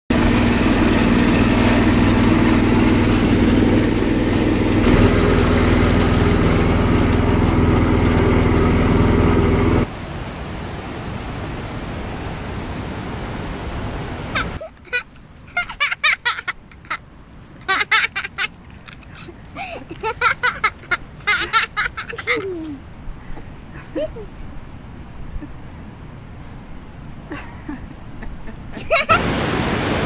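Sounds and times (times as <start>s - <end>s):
boat engine running: 0.1s - 9.9s, 28.3s - 30.0s
river water rushing over rocks: 28.8s - 30.0s.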